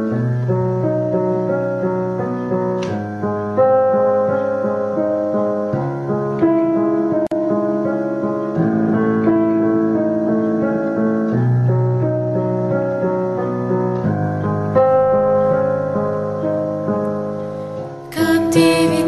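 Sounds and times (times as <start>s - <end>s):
fuller brighter accompaniment: 0.0s - 19.0s
keyboard chords: 0.0s - 19.0s.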